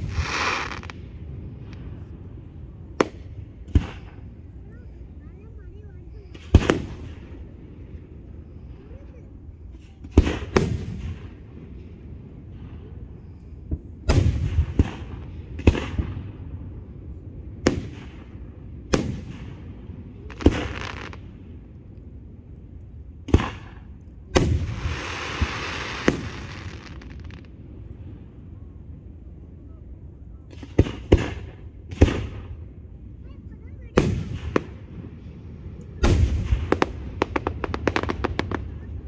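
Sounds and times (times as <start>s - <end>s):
firework hiss: 0.0s - 2.1s, 20.3s - 21.4s, 23.3s - 27.5s
firework shells booming: 2.9s - 4.4s, 6.2s - 7.5s, 9.7s - 16.6s, 23.2s - 27.6s, 30.5s - 32.8s, 33.9s - 39.0s.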